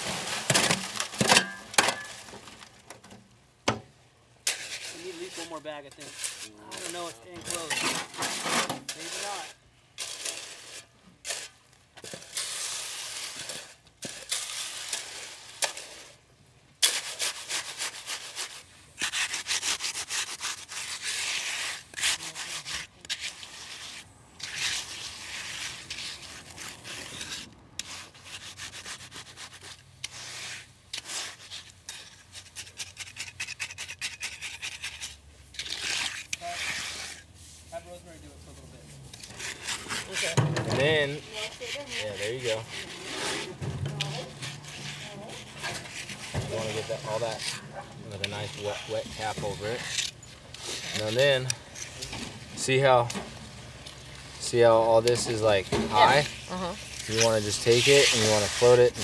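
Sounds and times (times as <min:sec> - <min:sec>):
tools scraping wet concrete: 0:00.0 - 0:03.0, 0:04.4 - 0:59.0.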